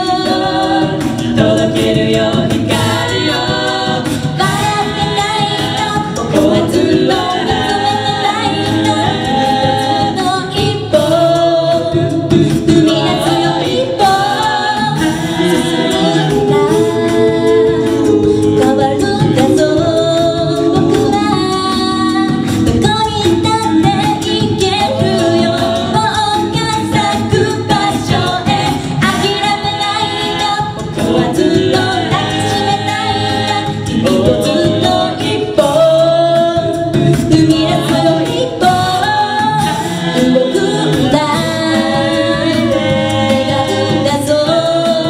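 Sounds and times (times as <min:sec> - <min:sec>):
group singing a cappella: 0:00.0 - 0:45.0.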